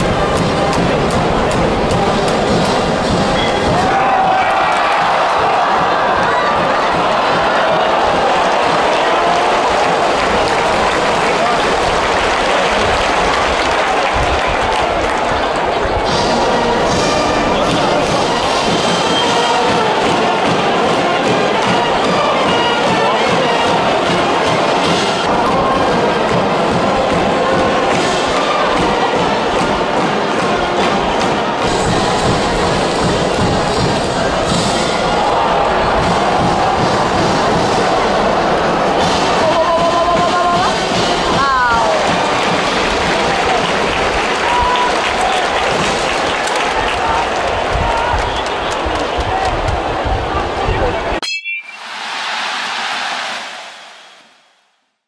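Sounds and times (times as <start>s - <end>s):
crowd singing and chanting: 16.1s - 42.4s.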